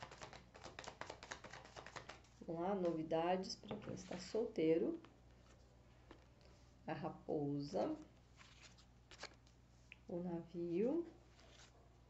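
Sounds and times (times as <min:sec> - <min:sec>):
cards being shuffled: 0:00.0 - 0:03.1, 0:08.3 - 0:09.6, 0:11.3 - 0:11.8.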